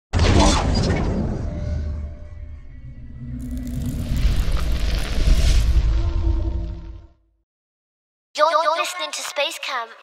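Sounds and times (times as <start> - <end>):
rising whoosh: 2.5 - 7.2
heavy shattering crash: 3.4 - 6.6.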